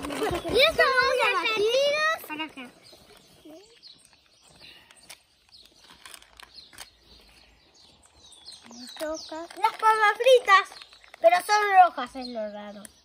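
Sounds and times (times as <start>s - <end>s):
faint bird chirps: 0.3s - 13.0s.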